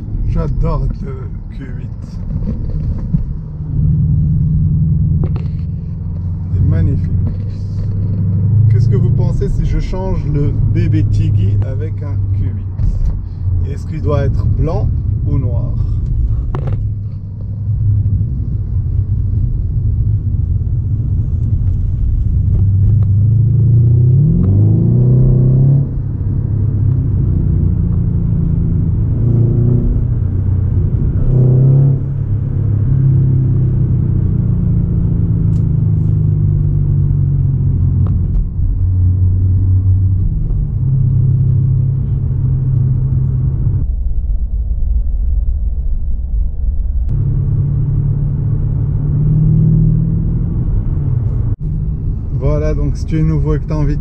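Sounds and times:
car engine hum from cabin: 0.0 - 54.0.

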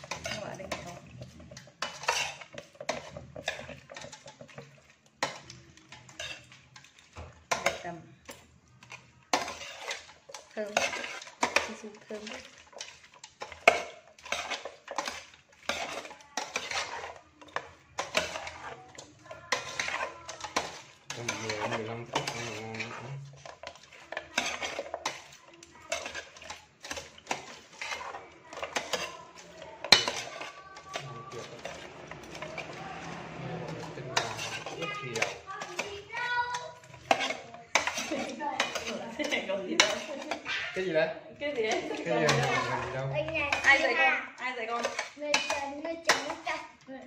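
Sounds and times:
metal spoon clinking in pot: 0.0 - 32.8, 33.6 - 40.4, 41.6 - 46.4.

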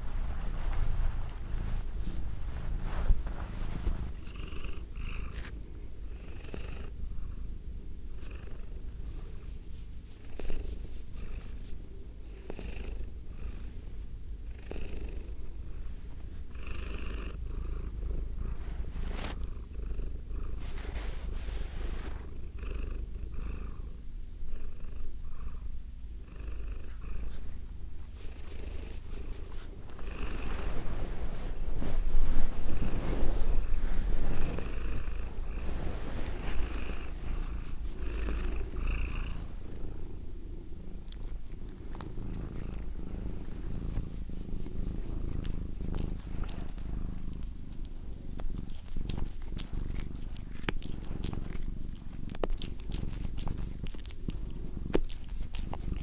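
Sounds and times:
cat purring: 0.0 - 56.0.

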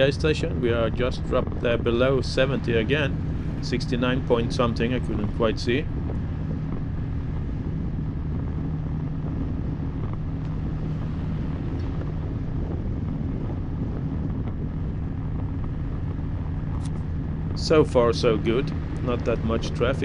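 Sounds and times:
motorcycle engine cruising: 0.0 - 20.0
road and wind noise: 0.0 - 20.0.

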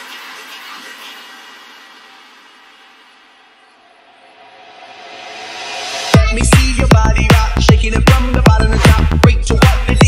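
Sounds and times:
hiss-like wash of noise: 0.0 - 6.2.

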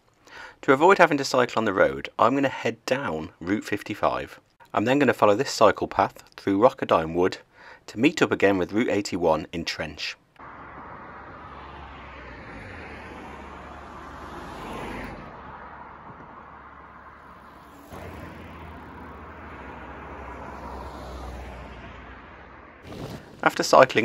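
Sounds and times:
road traffic: 10.2 - 24.0
car passing: 10.4 - 23.8.

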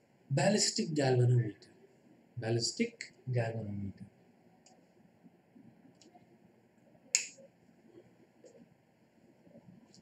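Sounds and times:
single sharp click: 7.1 - 7.4.

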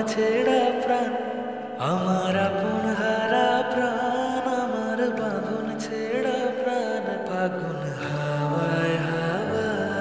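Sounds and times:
slow gliding melodic music: 0.0 - 10.0.

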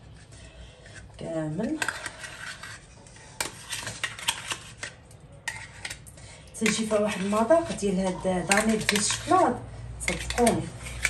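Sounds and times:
spoon scraping glass bowl: 0.4 - 11.0.

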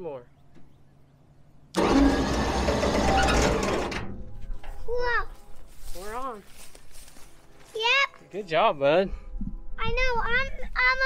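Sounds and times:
electric winch running: 1.7 - 4.1.

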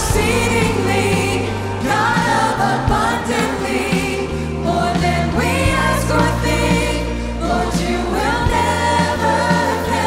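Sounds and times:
band accompaniment: 0.0 - 10.0
group singing worship song: 0.0 - 10.0
woman singing lead: 0.0 - 10.0.

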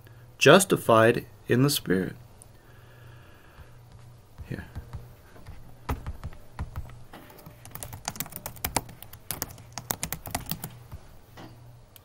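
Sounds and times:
faint low hum: 0.0 - 12.0
computer keyboard typing: 4.4 - 11.0.

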